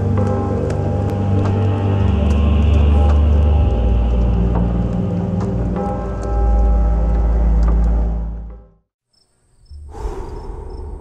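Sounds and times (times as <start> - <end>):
soundtrack music with bass drone: 0.0 - 8.8
crickets chirping: 9.1 - 11.0.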